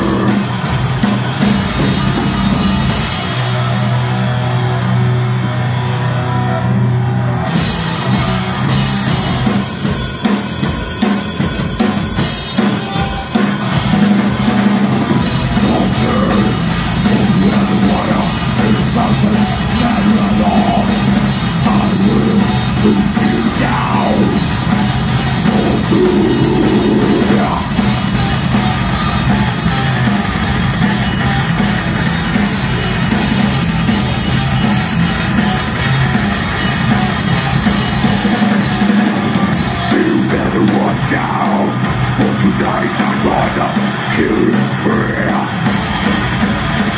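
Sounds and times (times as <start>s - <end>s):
drum kit: 0.0s - 5.9s, 7.0s - 46.9s
bass guitar: 0.0s - 46.9s
distorted electric guitars: 0.0s - 46.9s
metal band playing live: 0.0s - 46.9s.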